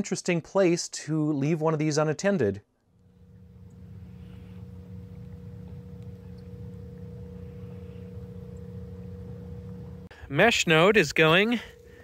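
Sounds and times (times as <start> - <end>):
low mechanical hum: 2.8 - 12.0.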